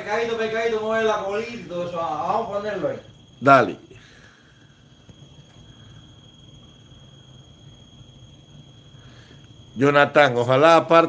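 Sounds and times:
low hum and hiss: 0.0 - 11.0
steady high-pitched whine: 0.0 - 11.0.

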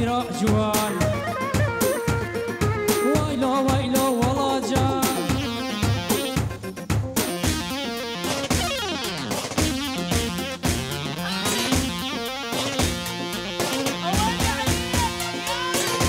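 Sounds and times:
keyboard melodic lead: 0.0 - 16.0
steady drum beat: 0.0 - 16.0.

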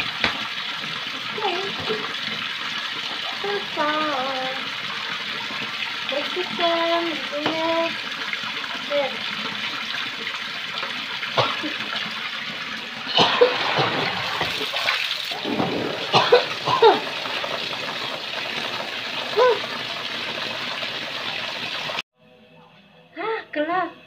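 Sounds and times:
splashes and knocks of washing: 0.0 - 22.0
tap water running into basin: 0.0 - 22.0.

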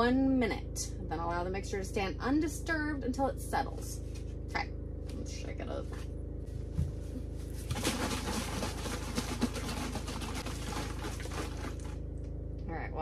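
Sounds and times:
steady low hum: 0.0 - 13.0
soil and water sloshing in plastic jar: 7.4 - 12.1.

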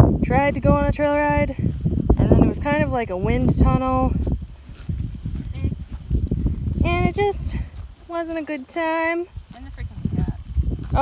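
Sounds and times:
horse tearing and chewing grass: 0.6 - 11.0.

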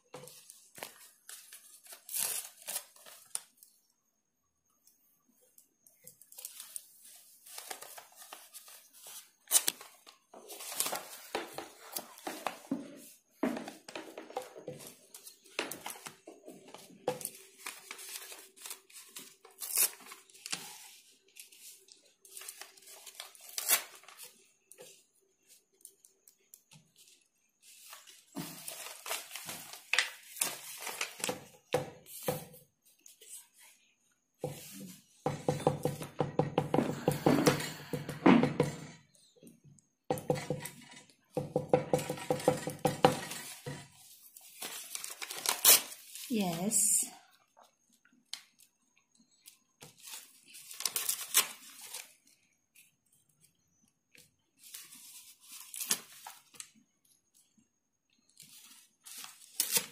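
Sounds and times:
paper tearing and rustling: 0.7 - 3.5, 6.4 - 12.6, 17.2 - 24.4, 27.8 - 31.3, 44.4 - 46.4, 50.0 - 52.2, 54.7 - 56.6, 58.4 - 59.9.

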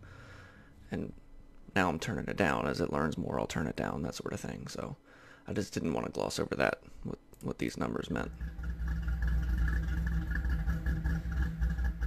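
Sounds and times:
car engine idling: 8.2 - 12.0.

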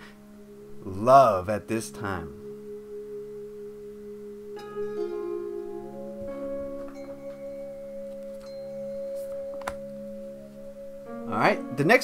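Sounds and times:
ambient music with bell-like tones: 0.0 - 12.0.

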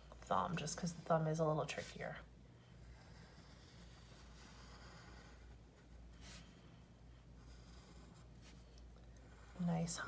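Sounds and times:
low room hum: 0.0 - 10.0
pencil scratching on paper: 2.8 - 6.6, 7.2 - 10.0.

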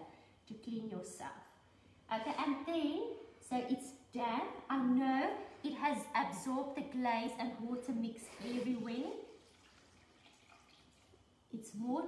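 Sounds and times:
liquid dripping into a bowl: 9.2 - 11.4.

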